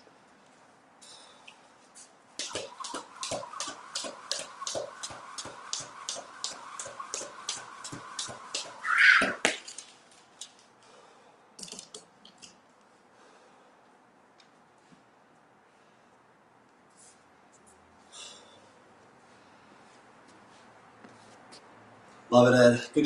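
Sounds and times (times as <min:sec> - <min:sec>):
jump rope slapping floor: 0:02.4 - 0:10.6
whir of turning rope: 0:02.4 - 0:10.6.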